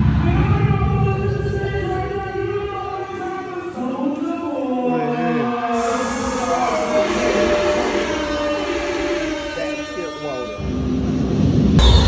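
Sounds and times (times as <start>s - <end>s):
heavy bass: 0.0s - 3.2s, 10.9s - 12.0s
voices: 0.0s - 10.6s
live concert music: 11.8s - 12.0s.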